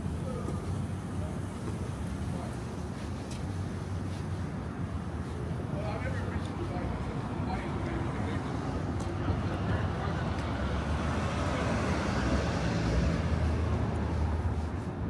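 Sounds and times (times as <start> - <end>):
vehicle rumble: 0.0 - 15.0.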